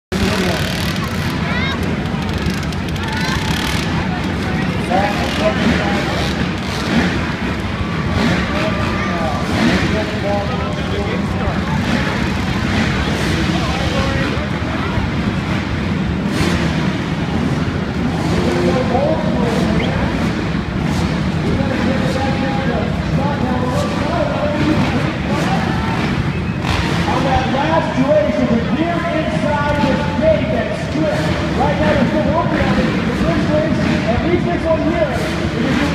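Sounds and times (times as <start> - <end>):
indistinct crowd voices: 0.1 - 35.9
motocross bikes idling: 0.1 - 35.9.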